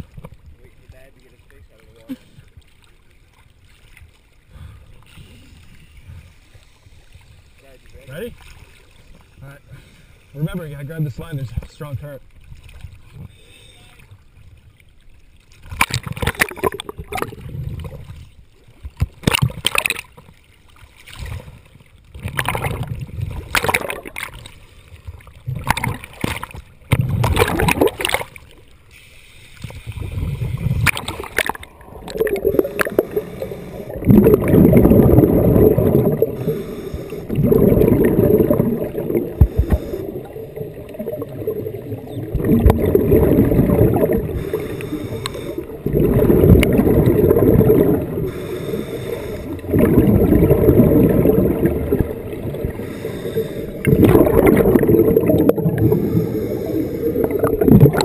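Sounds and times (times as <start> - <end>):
sea water splashing: 0.0 - 58.0
muffled underwater bubbling: 15.8 - 18.3, 21.2 - 24.5, 25.2 - 28.4, 29.9 - 58.0.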